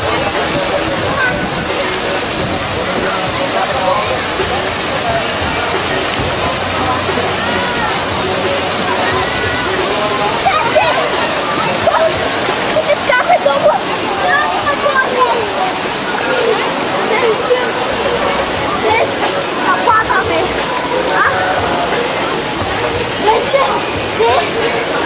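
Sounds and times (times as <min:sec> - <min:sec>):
voices calling and talking: 0:00.0 - 0:25.0
water rushing: 0:00.0 - 0:25.0.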